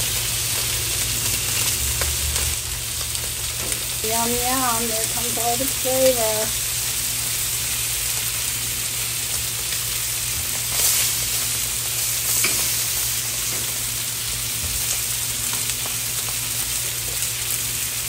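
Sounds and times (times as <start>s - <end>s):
pork chops sizzling on griddle: 0.0s - 18.0s.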